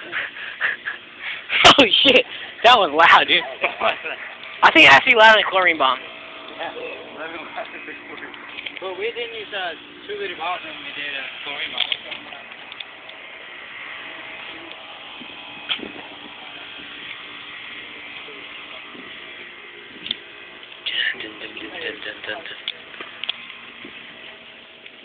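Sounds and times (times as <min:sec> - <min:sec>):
people talking indistinctly: 0:00.0 - 0:14.8, 0:19.9 - 0:23.2.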